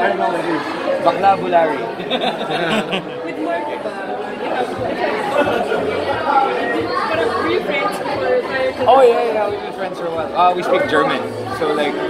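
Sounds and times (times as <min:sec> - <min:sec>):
overlapping conversational chatter: 0:00.0 - 0:12.0.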